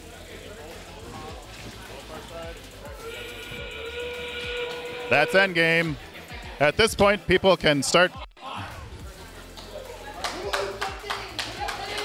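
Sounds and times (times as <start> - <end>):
faint background music: 0.0 - 12.0
room noise: 3.0 - 6.0
steady whistle-like chord tones: 3.1 - 5.9.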